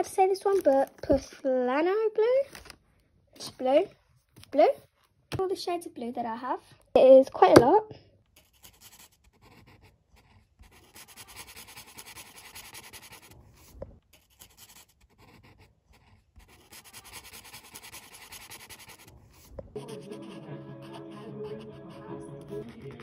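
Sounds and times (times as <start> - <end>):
marker scratching on paper: 8.4 - 23.0.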